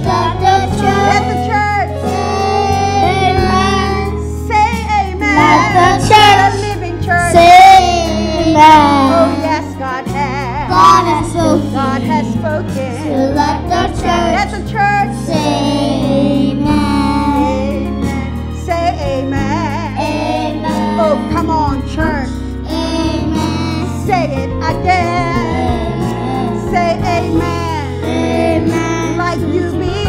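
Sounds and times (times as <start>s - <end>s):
children singing gospel song: 0.0s - 30.0s
instrumental accompaniment: 0.0s - 30.0s.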